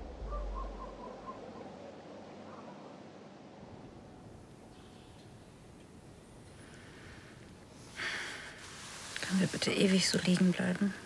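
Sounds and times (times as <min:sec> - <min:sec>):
low rumble: 0:00.0 - 0:04.7
faint night ambience: 0:00.0 - 0:11.0
owl hooting: 0:00.2 - 0:01.8.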